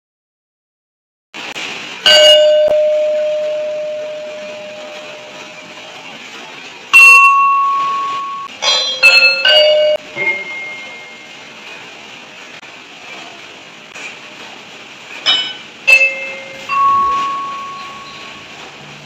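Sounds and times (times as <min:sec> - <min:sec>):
gamelan bars struck with mallet: 0:02.0 - 0:05.5, 0:06.9 - 0:11.3, 0:15.3 - 0:18.4.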